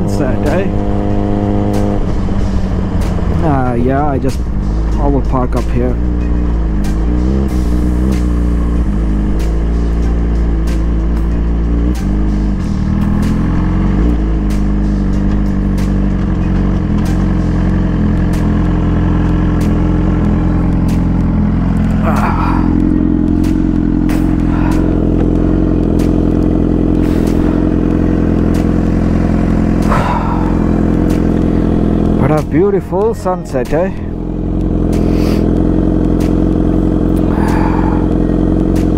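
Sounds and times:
motorcycle engine idling: 0.0s - 38.9s.

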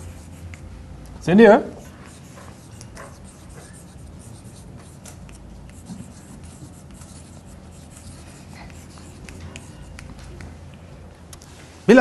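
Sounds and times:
chalk scratching on blackboard: 0.0s - 0.7s, 1.7s - 10.2s.

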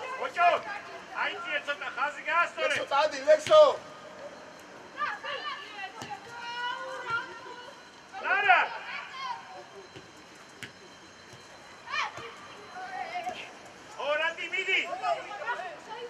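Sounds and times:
players shouting calls: 0.0s - 10.2s, 10.8s - 16.0s
low outdoor background: 0.0s - 16.0s.

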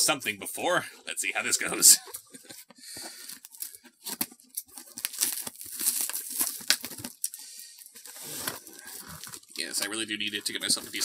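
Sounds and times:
cardboard box being torn open: 3.4s - 7.2s.

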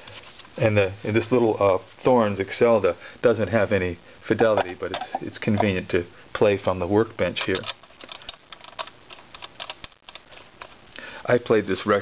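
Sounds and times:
record clicking onto gramophone spindle: 4.4s - 5.8s, 7.3s - 10.7s.

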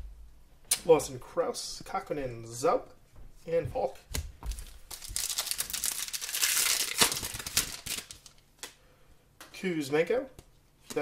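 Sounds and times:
foil wrapper crinkling and tearing: 4.5s - 8.4s.

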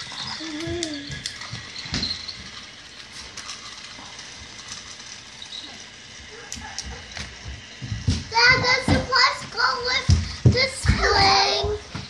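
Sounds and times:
small gears clicking: 0.0s - 11.2s
toy train motor whirring: 0.0s - 12.0s.

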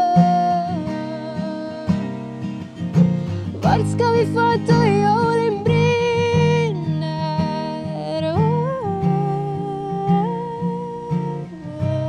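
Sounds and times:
woman singing wordless notes: 0.0s - 2.5s, 3.5s - 12.0s
strummed acoustic guitar: 0.0s - 12.0s.

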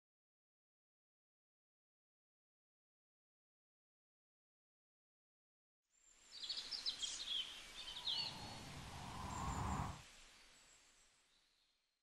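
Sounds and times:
soft steady hiss: 5.9s - 12.0s
bird chirps: 6.4s - 9.9s.

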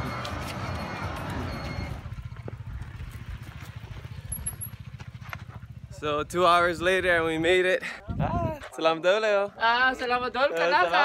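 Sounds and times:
wind buffeting microphone: 6.2s - 8.8s.

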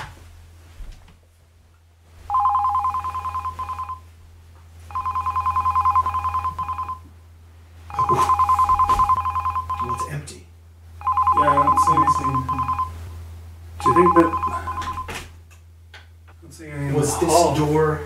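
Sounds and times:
telephone ringing two-tone trill: 2.3s - 4.1s, 4.9s - 7.1s, 7.9s - 10.1s, 11.0s - 13.0s, 13.8s - 15.1s.

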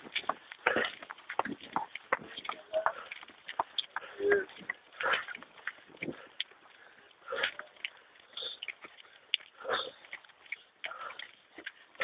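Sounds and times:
person breathing heavily: 2.8s - 3.2s, 3.9s - 5.4s, 6.0s - 10.1s, 10.8s - 11.5s.

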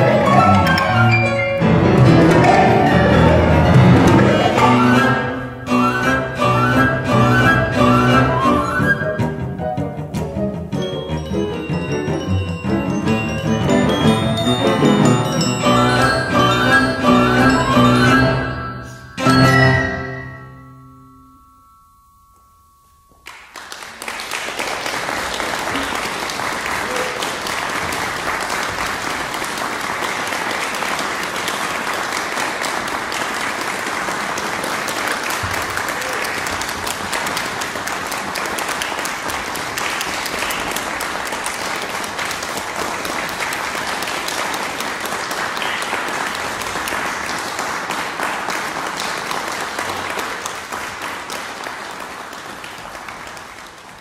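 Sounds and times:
audience applauding: 0.0s - 9.1s, 11.7s - 20.2s, 23.2s - 54.0s.

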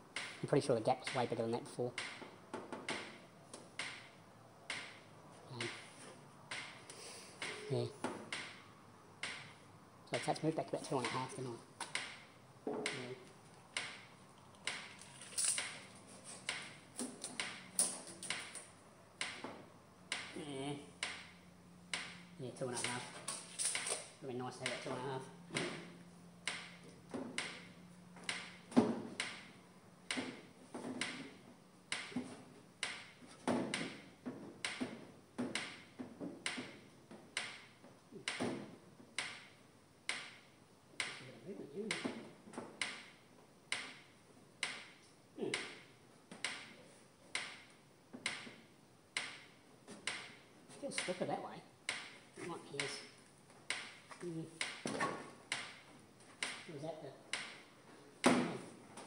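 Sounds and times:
electric fence ticking: 0.0s - 57.8s.

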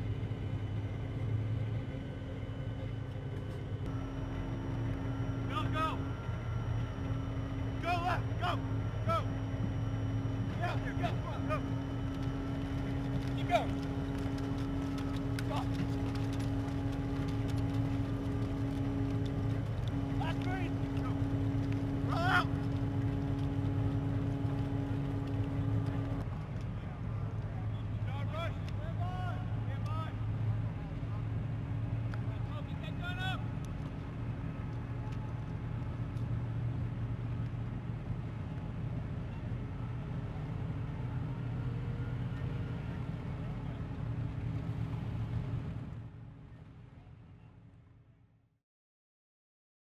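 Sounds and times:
higher held engine tone: 0.0s - 26.3s, 27.0s - 47.5s
diesel engine droning: 0.0s - 48.0s
people shouting: 19.9s - 23.0s.

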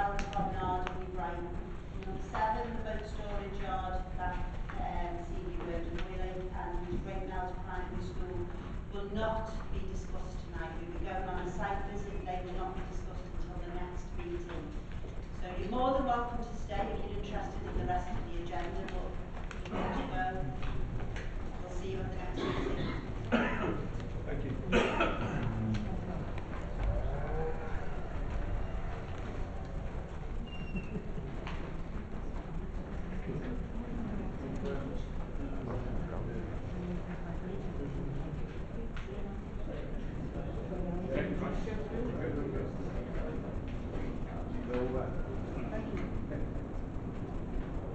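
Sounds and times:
low background hum: 0.0s - 47.9s
low room rumble: 0.0s - 47.9s.

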